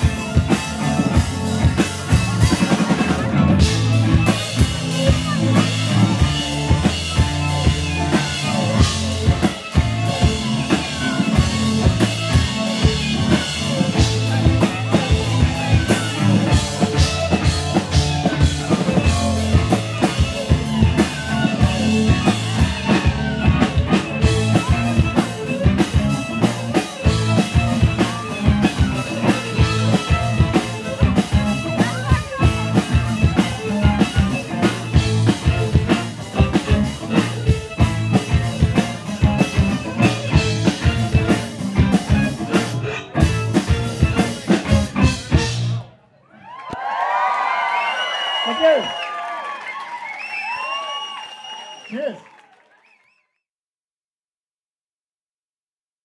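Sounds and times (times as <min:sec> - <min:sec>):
folk-rock band playing: 0:00.0 - 0:46.2.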